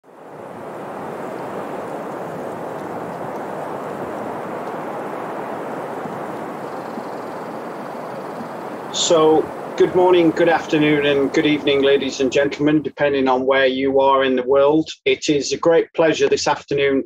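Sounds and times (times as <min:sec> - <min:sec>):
steady rushing noise: 0:00.0 - 0:12.8.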